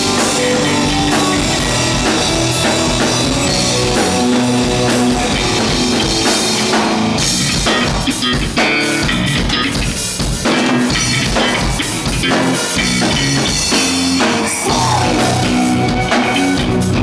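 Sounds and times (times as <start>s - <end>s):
violin playing: 0.0s - 7.2s
bass: 0.0s - 17.0s
drum kit: 0.0s - 17.0s
electric guitars: 0.0s - 17.0s
keyboards: 0.0s - 17.0s.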